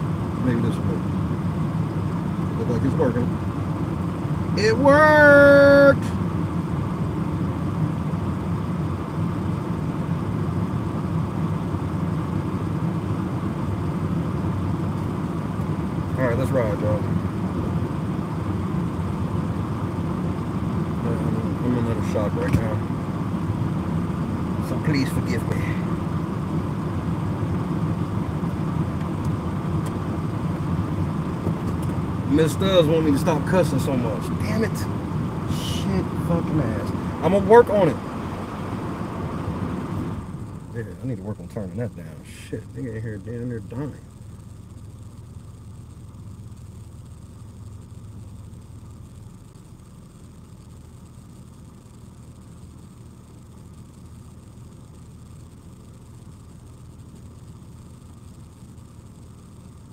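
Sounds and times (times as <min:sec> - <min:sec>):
road and engine rumble in car: 0:00.0 - 0:59.9.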